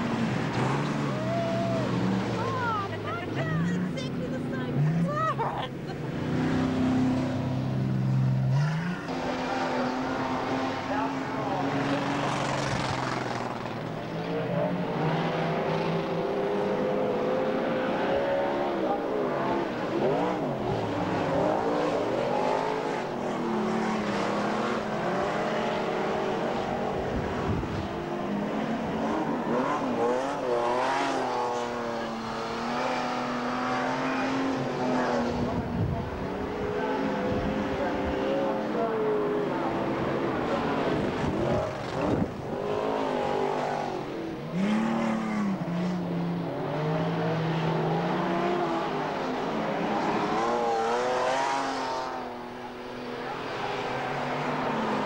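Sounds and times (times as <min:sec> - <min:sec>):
race car engines accelerating: 0:00.0 - 0:55.0.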